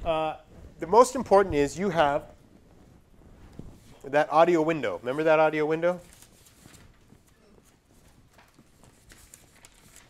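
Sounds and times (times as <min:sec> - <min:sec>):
paper sheets rustling and tapping: 0:05.7 - 0:10.0.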